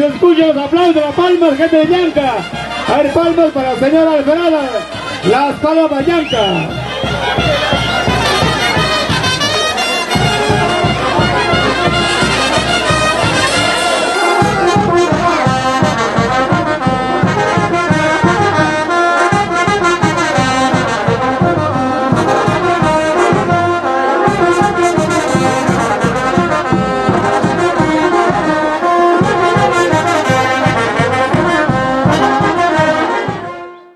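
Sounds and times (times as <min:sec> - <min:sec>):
steady drum beat: 0:00.0 - 0:33.5
brass band playing dance music: 0:00.0 - 0:33.9.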